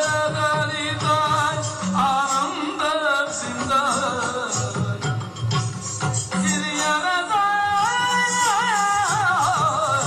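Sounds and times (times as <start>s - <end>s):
soft musical accompaniment: 0.0s - 10.0s.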